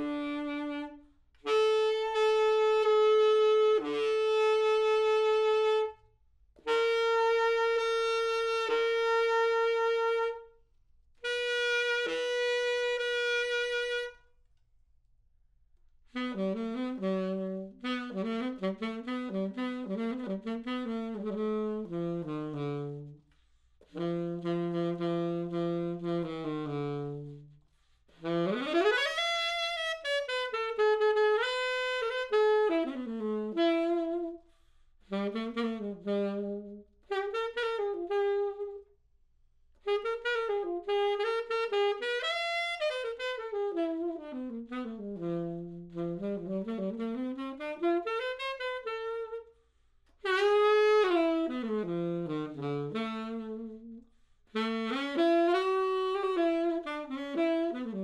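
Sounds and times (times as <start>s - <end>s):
solo saxophone: 0.0s - 14.7s, 15.8s - 58.0s.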